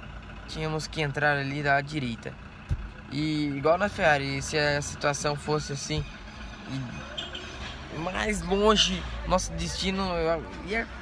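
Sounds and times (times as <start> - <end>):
low rumble inside car: 0.0 - 11.0.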